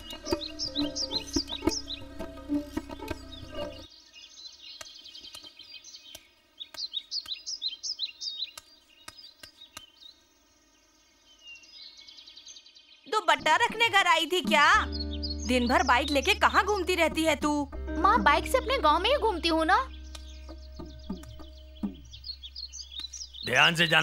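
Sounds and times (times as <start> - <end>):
background music: 0.0 - 3.9, 13.2 - 24.0
birds chirping: 0.0 - 24.0
sharp clicks: 20.1 - 20.3, 21.1 - 21.5.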